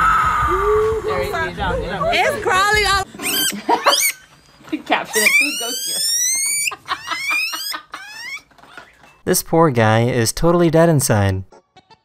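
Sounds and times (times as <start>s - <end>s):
guinea pig squealing: 3.2s - 4.3s, 5.0s - 8.5s.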